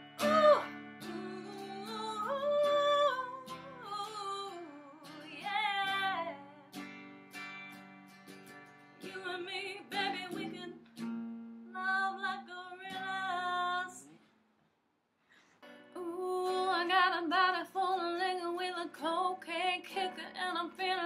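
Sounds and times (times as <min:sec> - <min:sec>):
woman singing: 0:00.0 - 0:06.8, 0:09.0 - 0:11.0, 0:11.7 - 0:14.2, 0:15.9 - 0:21.0.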